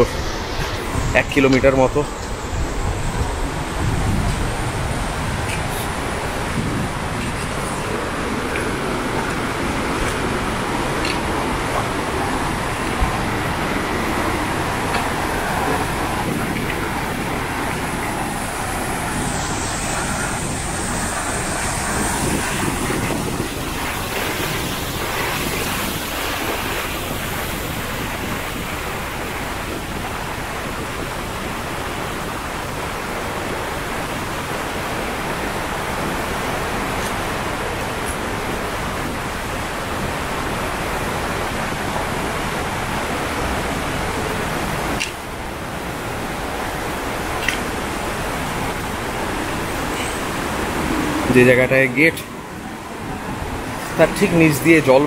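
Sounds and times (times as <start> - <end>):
stream rushing over rocks: 0.0 - 55.0.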